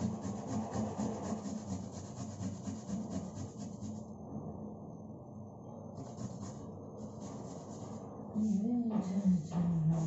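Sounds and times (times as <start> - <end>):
food scraping on metal grater: 0.0 - 4.0, 6.0 - 8.0.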